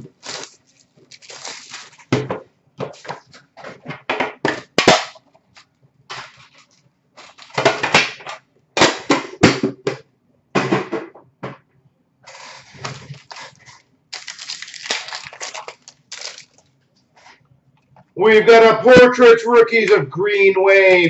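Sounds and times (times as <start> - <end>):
wrappers crinkling and tearing: 0.0 - 2.2, 5.5 - 7.6, 12.3 - 17.4.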